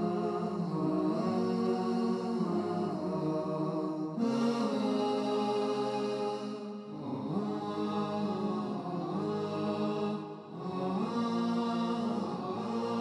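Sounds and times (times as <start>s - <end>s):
theme music with chanting voice: 0.0s - 13.0s.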